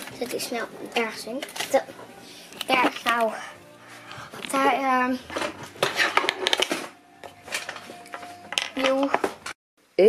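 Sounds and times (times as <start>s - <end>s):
objects clicking and rustling: 0.0s - 3.4s, 4.4s - 9.6s.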